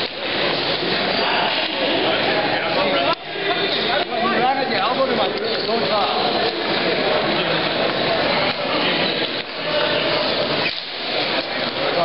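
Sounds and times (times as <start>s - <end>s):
men's voices chattering: 0.0s - 12.0s.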